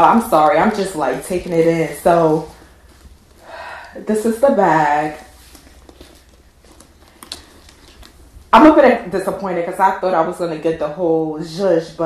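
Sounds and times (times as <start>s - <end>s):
low room hum: 0.0s - 12.0s
leather bag clicks and rustles: 5.3s - 8.4s.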